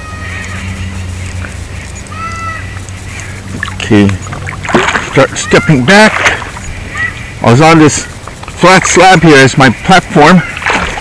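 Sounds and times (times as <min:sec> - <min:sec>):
bird call: 0:00.0 - 0:03.5, 0:06.6 - 0:07.5
steady low hum: 0:00.0 - 0:11.0.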